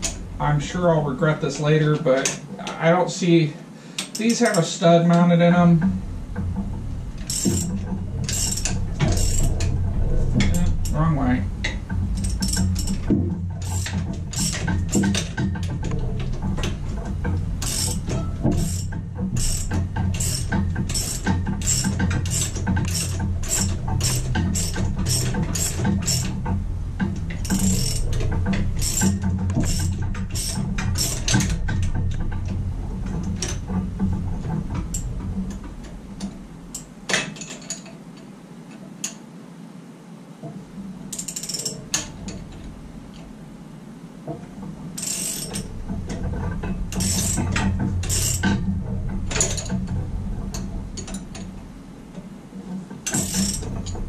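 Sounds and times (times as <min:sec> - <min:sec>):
steady low hum: 0:00.0 - 0:54.0
ratchet wrench clicking: 0:17.6 - 0:26.4, 0:27.4 - 0:28.1, 0:28.8 - 0:31.5, 0:47.0 - 0:47.4.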